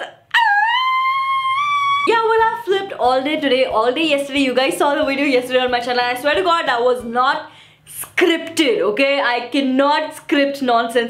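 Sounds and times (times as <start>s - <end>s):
woman squealing: 0.0s - 2.2s.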